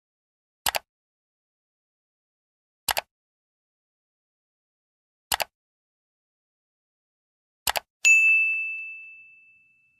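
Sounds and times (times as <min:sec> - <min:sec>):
mouse clicks: 0:00.7 - 0:00.9, 0:02.9 - 0:03.1, 0:05.3 - 0:05.5, 0:07.7 - 0:07.9
bright bell ding: 0:08.0 - 0:09.9.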